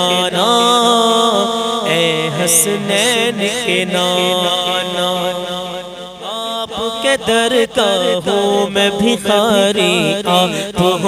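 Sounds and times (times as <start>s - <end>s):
man singing: 0.0s - 11.0s.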